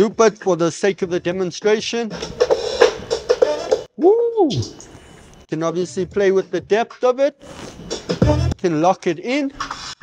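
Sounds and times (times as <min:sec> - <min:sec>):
looped drum beat: 0:02.1 - 0:03.9, 0:07.8 - 0:08.6.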